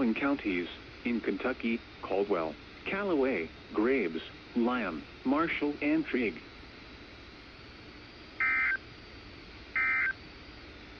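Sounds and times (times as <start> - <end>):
steady receiver hiss: 0.0 - 10.9
buzzy digital data bursts: 8.4 - 8.8, 9.7 - 10.2.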